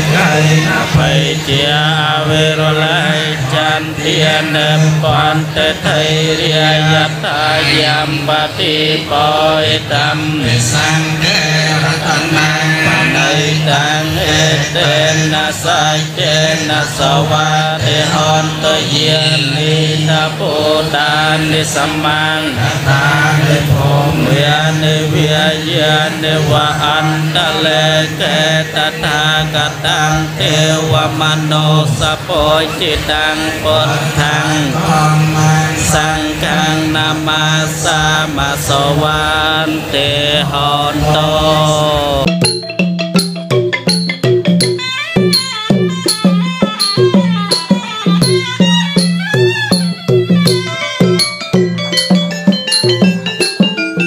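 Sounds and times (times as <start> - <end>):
monks chanting in unison: 0.0 - 42.3.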